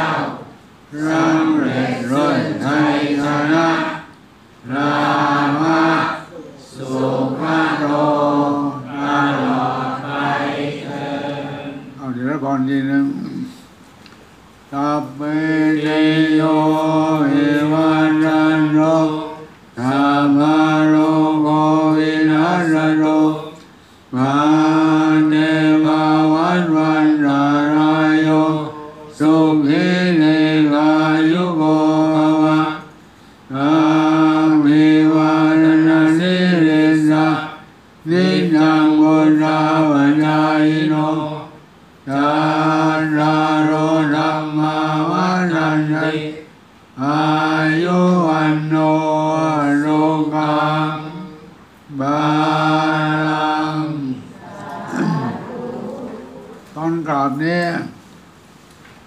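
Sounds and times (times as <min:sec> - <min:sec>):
monks chanting: 0:00.0 - 0:12.2, 0:14.7 - 0:32.9, 0:33.5 - 0:56.6.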